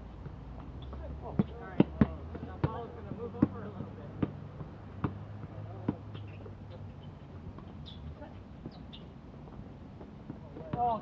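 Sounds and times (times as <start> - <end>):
basketball bouncing on hard court: 1.4 - 4.4.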